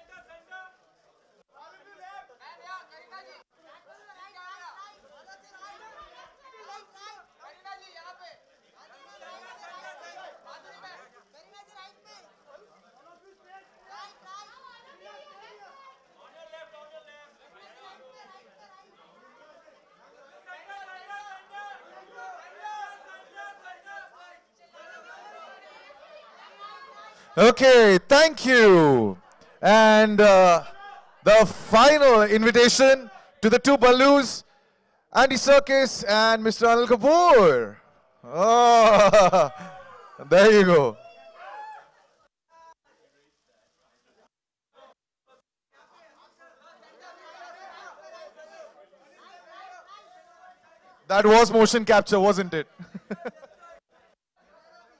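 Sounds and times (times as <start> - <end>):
indistinct chatter of voices: 0.0 - 33.6, 45.7 - 54.9.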